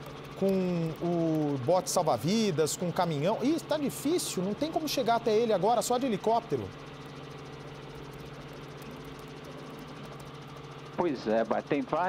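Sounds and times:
helicopter engine and rotor: 0:00.0 - 0:12.0.

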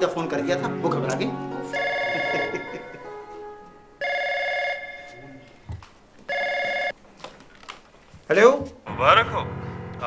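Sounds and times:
desk telephone ringing: 0:01.7 - 0:03.0, 0:04.0 - 0:05.2, 0:06.3 - 0:07.0.

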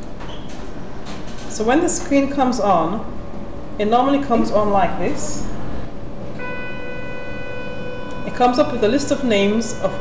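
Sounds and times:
low steady hum: 0:00.0 - 0:10.0
steady electronic tone: 0:06.3 - 0:10.0.

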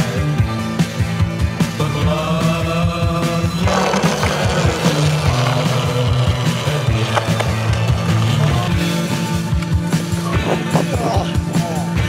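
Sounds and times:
soundtrack music with bass and beat: 0:00.0 - 0:12.0.

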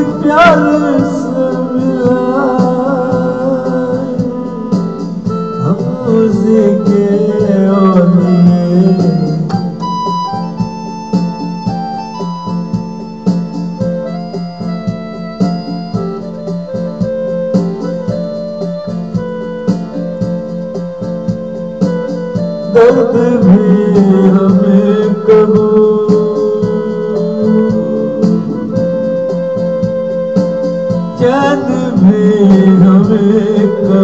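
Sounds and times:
electronic keyboard organ chords: 0:00.0 - 0:34.0
light steady beat: 0:00.0 - 0:34.0
wavering gliding notes: 0:22.9 - 0:34.0.

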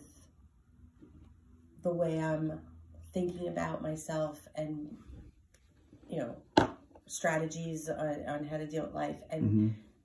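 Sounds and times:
sharp knock: 0:06.6 - 0:06.8
person speaking quietly: 0:09.4 - 0:09.8.

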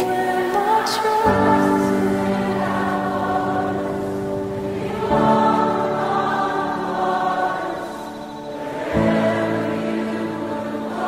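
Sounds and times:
choir holding sustained chords: 0:00.0 - 0:11.0.

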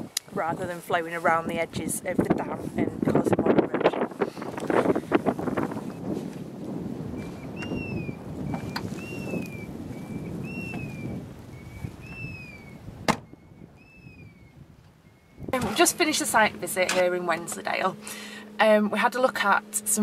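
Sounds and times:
wind gusting on microphone: 0:00.0 - 0:20.0
bird two-note whistled call: 0:07.3 - 0:15.4
car door shutting: 0:13.0 - 0:13.4.

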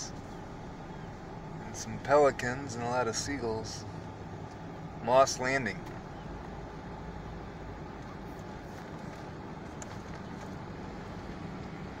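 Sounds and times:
low rumble of vehicle noise: 0:00.0 - 0:12.0.

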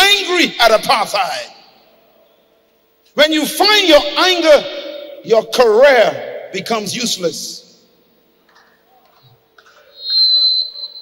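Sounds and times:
faint steady hum: 0:00.0 - 0:11.0
shrill high-pitched tone: 0:09.9 - 0:11.0.

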